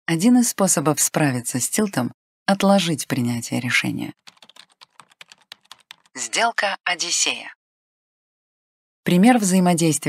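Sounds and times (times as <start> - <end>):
voice: 0.1 - 4.2, 6.2 - 7.6, 9.1 - 10.0.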